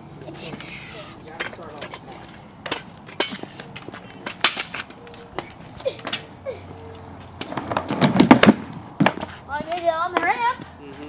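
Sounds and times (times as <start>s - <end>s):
small wheels rolling on concrete: 0.0s - 11.0s
wheels clacking over joints: 6.9s - 10.7s.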